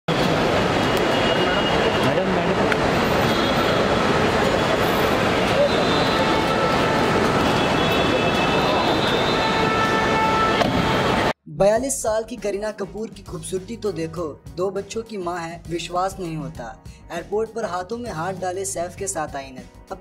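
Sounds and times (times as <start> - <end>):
road traffic noise: 0.1 - 11.4.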